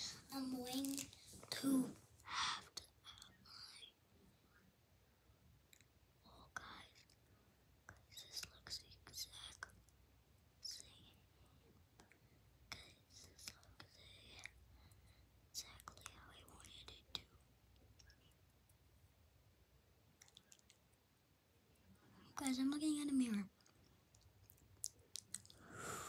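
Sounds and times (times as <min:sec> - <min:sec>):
child whispering: 0:00.0 - 0:04.0, 0:06.2 - 0:07.2, 0:07.9 - 0:09.7, 0:10.6 - 0:11.2, 0:12.0 - 0:14.6, 0:15.6 - 0:17.4, 0:22.1 - 0:23.6.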